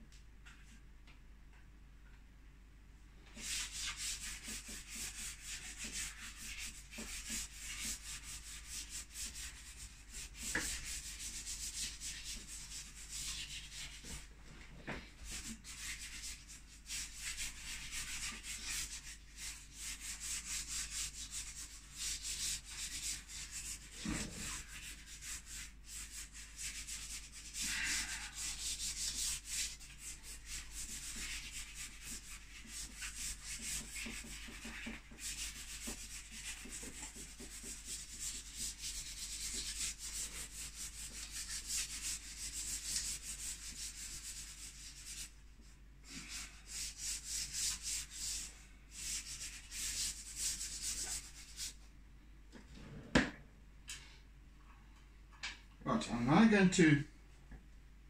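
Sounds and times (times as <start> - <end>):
charcoal scratching on canvas: 3.4 - 14.3, 15.3 - 45.4, 46.1 - 51.8.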